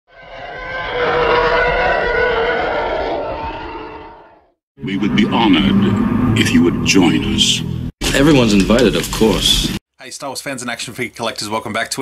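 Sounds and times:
swelling roar with steady tones: 0.1s - 7.9s.

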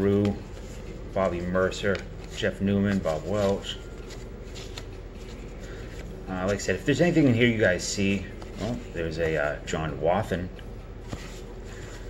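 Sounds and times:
cards rustling and sliding: 0.0s - 9.6s, 10.7s - 12.0s.

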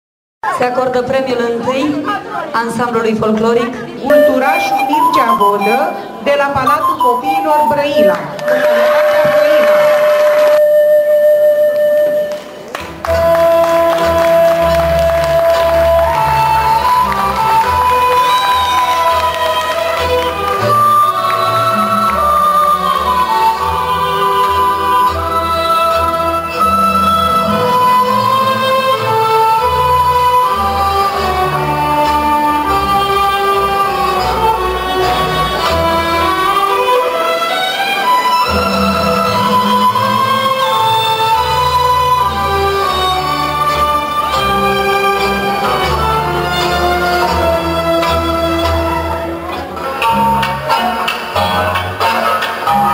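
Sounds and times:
crowd hubbub: 0.4s - 52.9s
instrumental folk dance music: 3.9s - 52.9s
steady high tone: 4.1s - 11.5s.

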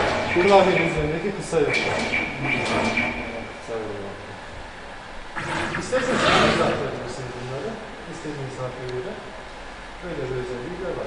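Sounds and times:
men talking indistinctly: 0.0s - 4.3s, 5.4s - 9.3s, 10.0s - 11.0s
steady high tone: 0.0s - 4.6s.

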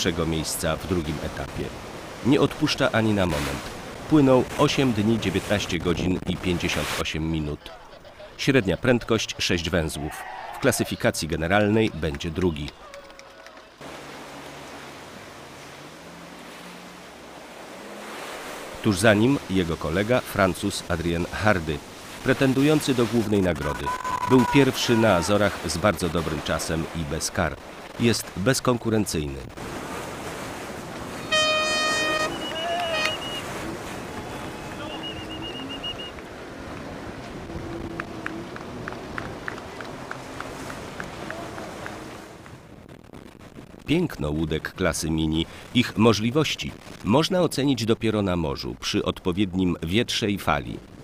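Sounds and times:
water noise: 0.0s - 51.0s
waves breaking around boat: 0.0s - 51.0s
wind: 0.0s - 51.0s
wavering whistle tones: 31.2s - 33.6s, 34.2s - 36.2s
horn blast: 31.2s - 33.8s.

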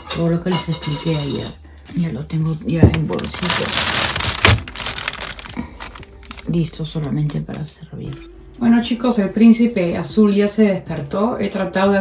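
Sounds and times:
plastic bags crinkling: 2.8s - 7.2s.

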